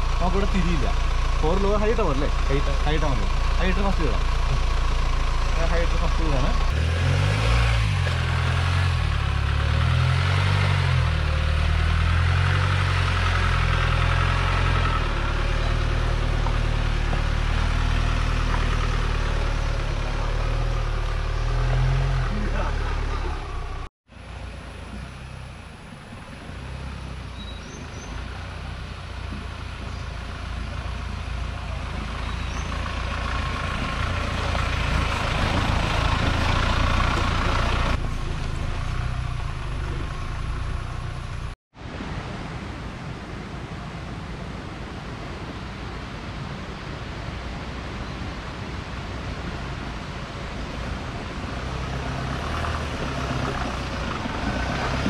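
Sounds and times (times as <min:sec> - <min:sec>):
off-road vehicle engine running: 0:00.0 - 0:41.6, 0:50.8 - 0:55.0.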